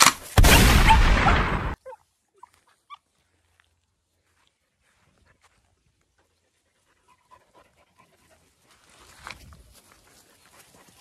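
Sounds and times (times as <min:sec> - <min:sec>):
dogs panting: 0:04.8 - 0:11.0.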